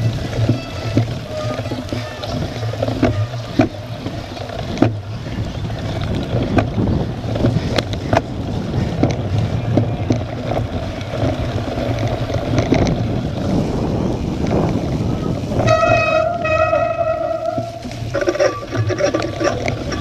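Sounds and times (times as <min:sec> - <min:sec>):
bike rattling over bumps: 0:00.0 - 0:20.0
bike rolling over rough grass: 0:00.0 - 0:20.0
wind buffeting microphone: 0:00.0 - 0:20.0.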